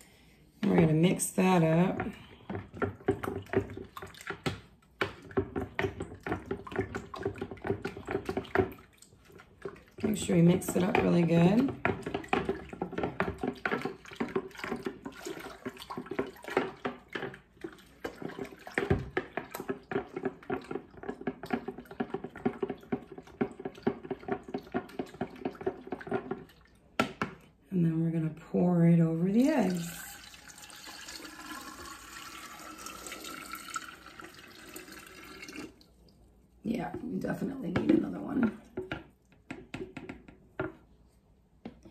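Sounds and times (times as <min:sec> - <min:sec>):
spoon tapping and scraping pitcher: 0:00.6 - 0:27.5, 0:29.3 - 0:35.8, 0:36.7 - 0:40.9.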